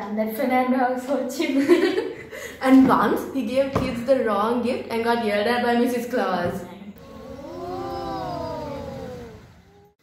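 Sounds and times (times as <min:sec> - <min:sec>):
children's wordless vocal sound: 0:07.0 - 0:10.0.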